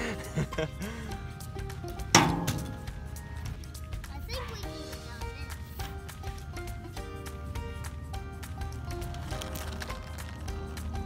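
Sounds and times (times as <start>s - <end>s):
background music of held notes: 0.0s - 11.0s
toy truck clanking on ramp: 2.0s - 3.0s.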